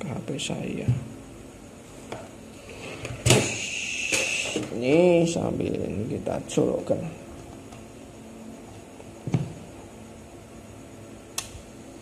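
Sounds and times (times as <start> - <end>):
high-pitched whine: 2.4 - 7.3
sharp click: 11.3 - 11.6.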